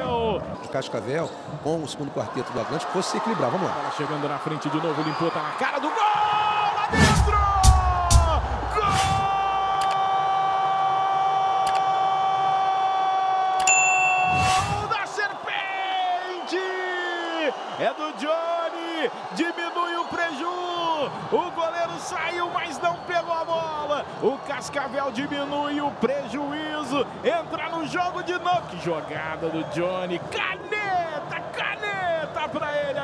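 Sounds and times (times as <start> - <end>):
arena crowd noise: 0.0 - 33.0
sports commentator shouting: 5.8 - 9.8.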